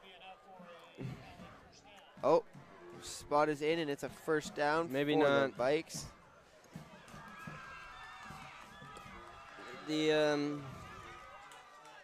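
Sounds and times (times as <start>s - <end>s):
faint crowd voices: 0.0s - 12.0s
man speaking: 3.0s - 6.1s.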